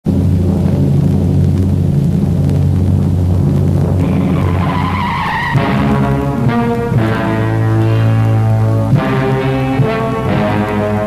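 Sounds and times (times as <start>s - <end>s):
car engine rumbling: 0.0s - 11.0s
tyres squealing: 4.0s - 6.4s
orchestral music with brass: 4.0s - 11.0s.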